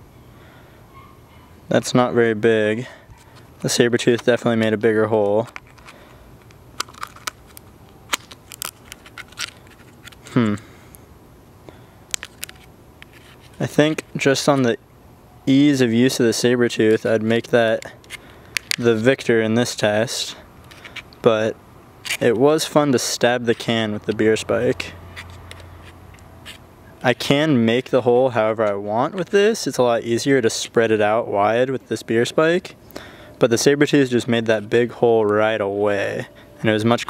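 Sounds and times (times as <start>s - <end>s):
low steady hum: 0.0s - 37.0s
can crackling and clicking: 5.2s - 10.3s.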